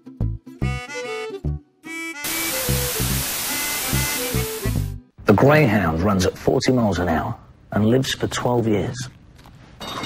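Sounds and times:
television static hiss: 0:02.3 - 0:04.9.

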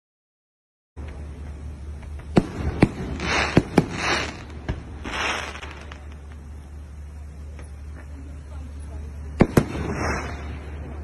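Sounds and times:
firework crackle: 0:01.9 - 0:11.0
firework bangs: 0:02.0 - 0:06.6, 0:09.2 - 0:11.0.

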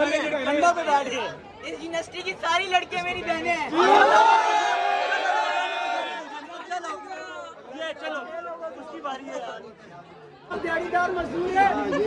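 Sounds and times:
young men chattering: 0:00.0 - 0:12.0.

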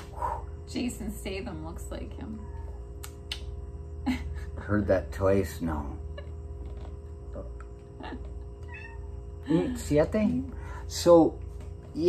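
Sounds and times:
steady hum: 0:00.0 - 0:12.0
cat meowing: 0:02.3 - 0:02.8, 0:08.6 - 0:09.2.

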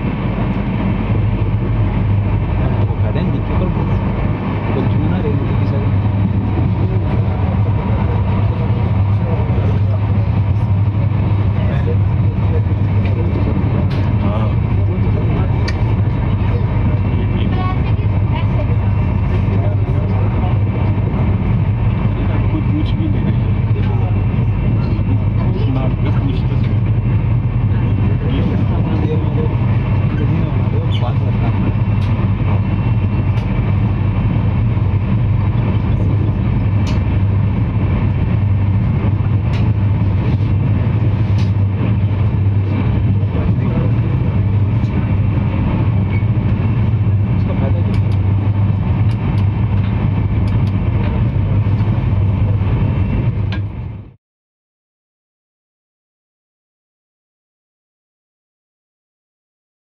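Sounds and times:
strong low hum: 0:00.0 - 0:54.2
train rumbling on track: 0:00.0 - 0:54.2.

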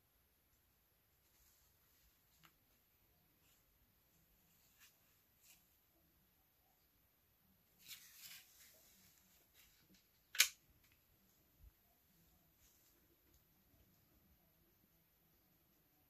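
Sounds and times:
soft rustle: 0:00.5 - 0:06.9, 0:07.5 - 0:10.2, 0:10.9 - 0:14.7.

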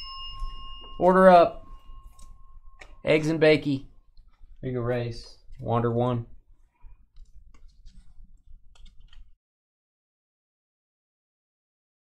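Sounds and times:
cards being flipped through: 0:07.1 - 0:09.3.

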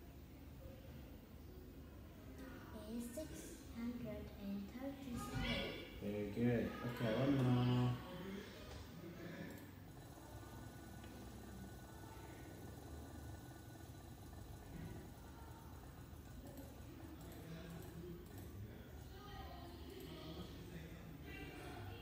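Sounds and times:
faint steady low hum: 0:00.0 - 0:22.0.

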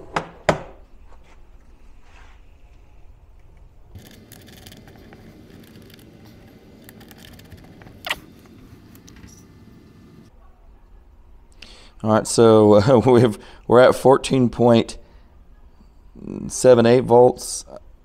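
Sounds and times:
steady low hiss: 0:00.8 - 0:10.3
charging leads clicking and scraping: 0:03.9 - 0:10.3.

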